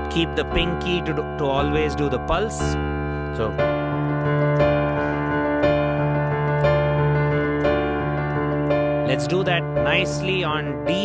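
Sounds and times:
digital piano playing: 0.0 - 11.0.

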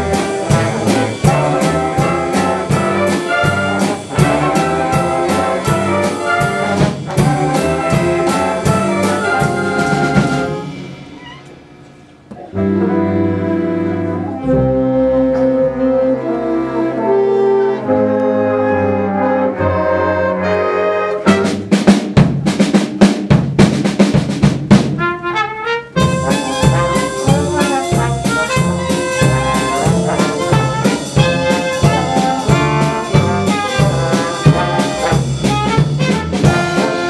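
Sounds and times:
drum hits: 0.0 - 11.2, 21.3 - 25.2, 26.0 - 37.0
woodwinds holding chords: 0.0 - 11.3, 12.3 - 21.7, 25.2 - 37.0
jazz band with brass: 0.0 - 37.0.

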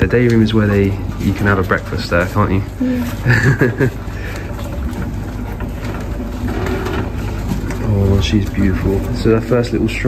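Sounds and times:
bassinet wheels rolling: 0.0 - 10.0.

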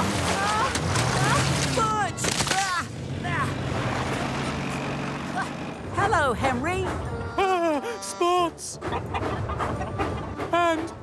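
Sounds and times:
vehicle engine humming: 0.0 - 11.0.

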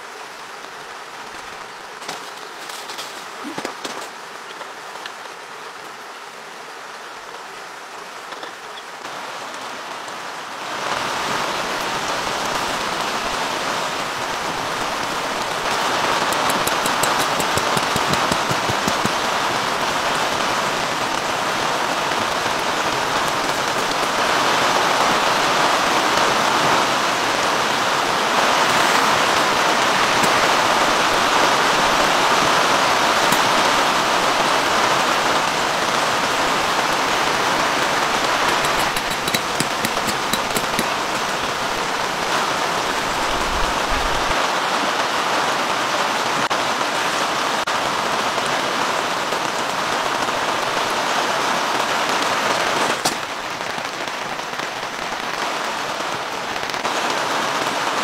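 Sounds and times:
rain on tarp awning: 0.0 - 58.0.

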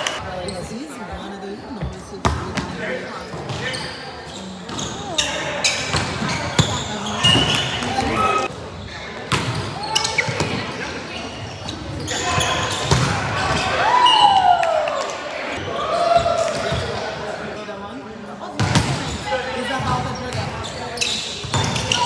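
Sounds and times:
volleyball hits: 9.3 - 10.6, 12.7 - 13.7.

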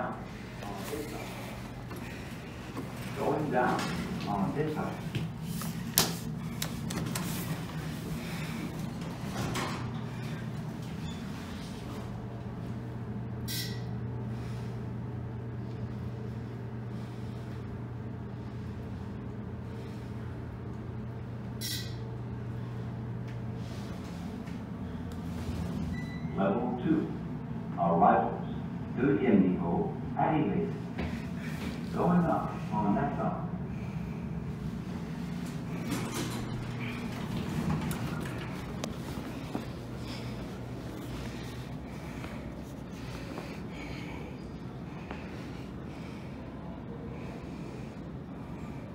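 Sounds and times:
elevator doors sliding open: 0.0 - 14.0, 34.6 - 42.6
elevator descending low hum: 0.0 - 48.9.

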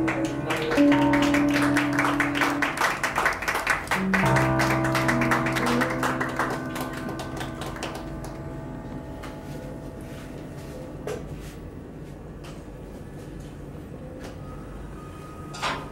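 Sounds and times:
electric guitar chords: 0.0 - 11.9
keyboard chords: 0.0 - 11.9.

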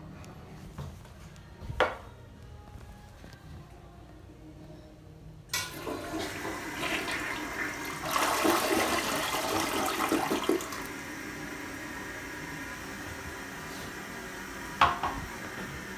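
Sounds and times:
water running into bowl: 5.6 - 11.0
toilet flushing: 5.6 - 15.9.

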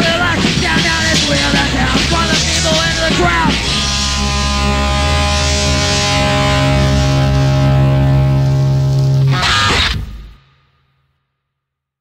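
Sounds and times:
distorted electric guitar chord: 1.0 - 10.5.

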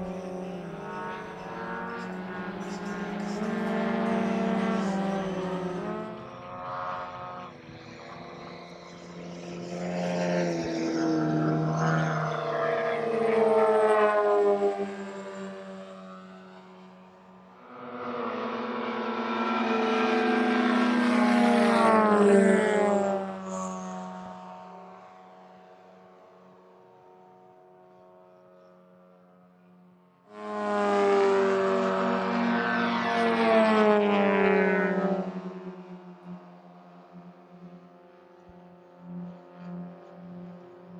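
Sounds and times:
model jet turbine engines passing: 0.0 - 40.9.

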